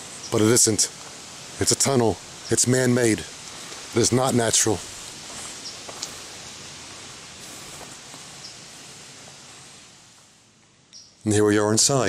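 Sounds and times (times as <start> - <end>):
leaves rustling: 0.0 - 12.0
outdoor ambience hiss: 0.0 - 12.0
faint ticks: 5.6 - 6.2.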